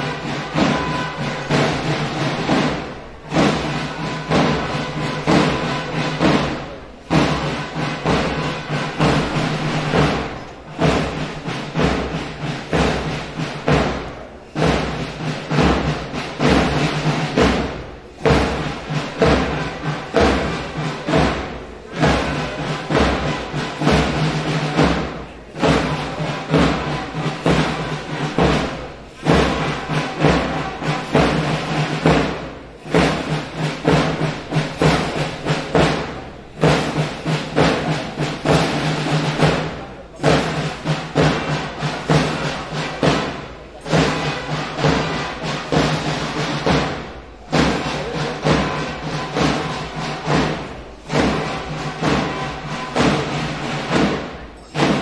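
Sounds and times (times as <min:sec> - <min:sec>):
processional march music: 0:00.0 - 0:55.0
steady drum beat: 0:00.0 - 0:55.0.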